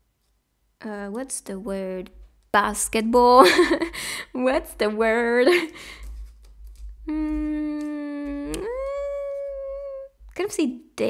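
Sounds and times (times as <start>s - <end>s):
woman humming: 7.0s - 10.3s.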